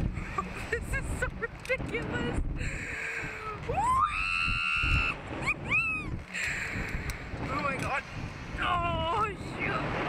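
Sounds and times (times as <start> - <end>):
wind rushing over microphone: 0.0 - 10.0
girl screaming: 3.7 - 6.1.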